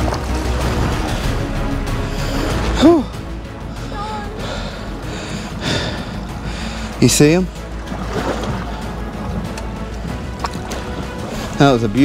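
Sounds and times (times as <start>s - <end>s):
background music: 0.0s - 12.0s
boat noise: 0.0s - 12.0s
low rumble: 0.0s - 12.0s
sea waves: 0.0s - 12.0s
wind: 0.0s - 12.0s.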